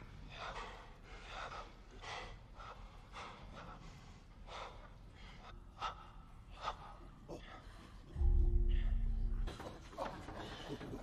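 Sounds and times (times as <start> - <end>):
heavy ragged breathing: 0.0 - 11.0.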